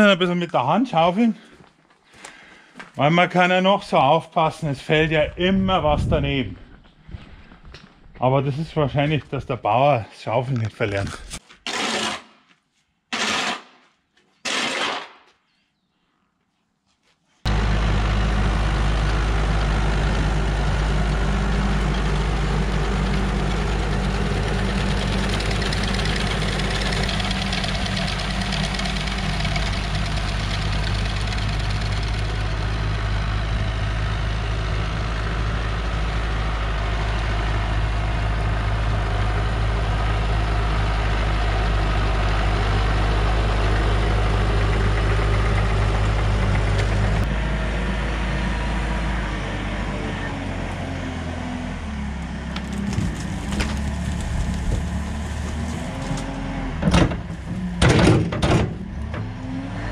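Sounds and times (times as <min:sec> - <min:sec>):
shovel scraping: 0:10.9 - 0:15.4
tractor diesel engine running: 0:17.5 - 0:59.9.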